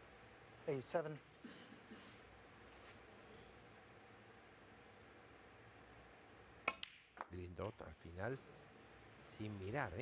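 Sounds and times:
quiet arena hush: 0.0 - 10.0
snooker balls clicking: 6.5 - 7.4.

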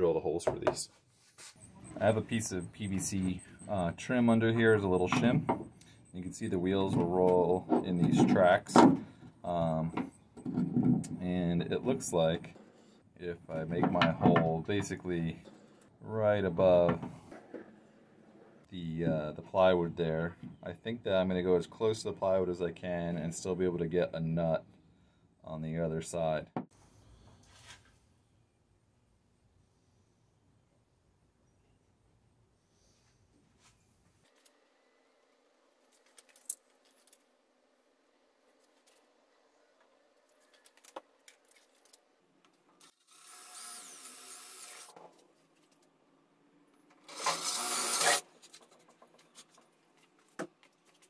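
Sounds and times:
power drill boring into wood: 43.0 - 45.0, 47.1 - 48.3.

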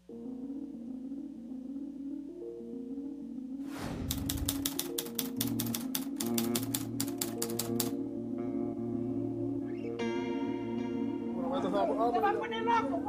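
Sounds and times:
low sustained music bed: 0.0 - 13.0
whoosh: 3.6 - 4.7
typewriter key clicks: 4.1 - 8.0.

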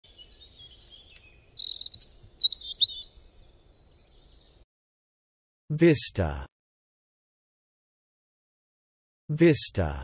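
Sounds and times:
bird chirping and trilling: 0.0 - 4.6.

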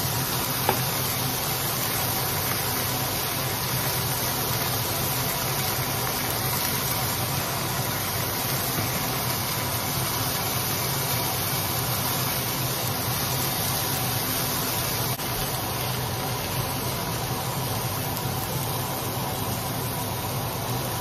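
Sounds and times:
steak sizzling in skillet: 0.0 - 21.0.

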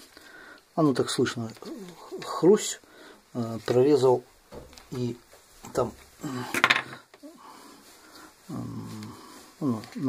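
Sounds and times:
person mumbling: 1.6 - 2.6.

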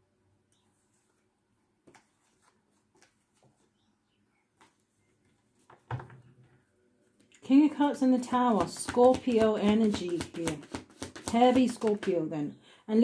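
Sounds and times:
cards clicking and tapping: 8.4 - 12.3.

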